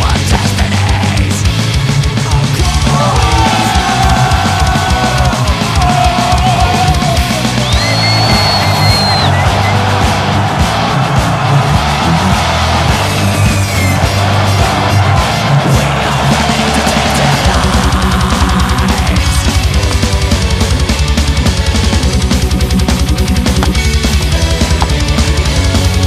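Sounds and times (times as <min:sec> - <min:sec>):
drums fast beat: 0:00.0 - 0:26.0
heavy rock music: 0:00.0 - 0:26.0.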